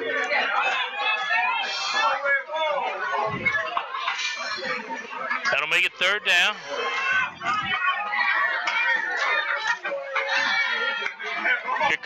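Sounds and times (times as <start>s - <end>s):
football crowd yelling and cheering: 0.0s - 12.0s.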